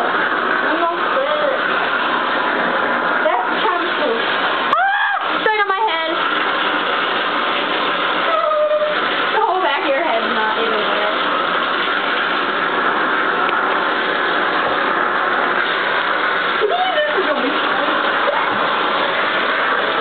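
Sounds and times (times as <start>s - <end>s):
bathtub faucet running: 0.0s - 20.0s.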